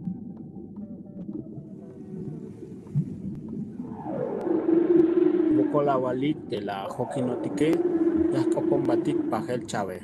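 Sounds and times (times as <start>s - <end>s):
steady rumble: 0.0s - 10.0s
low wavering moans: 1.4s - 9.7s
rush of noise: 3.7s - 10.0s.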